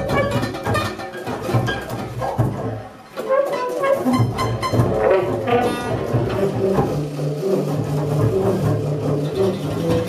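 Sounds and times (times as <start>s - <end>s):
bowed double bass: 0.0s - 10.0s
tenor saxophone: 3.7s - 7.6s.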